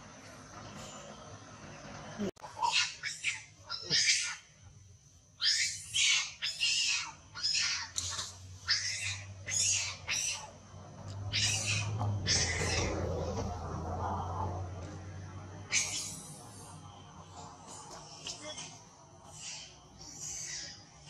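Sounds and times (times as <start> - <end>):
monkey screaming: 2.4 - 4.5, 5.4 - 10.6, 11.2 - 13.1, 15.7 - 16.4, 19.2 - 21.0.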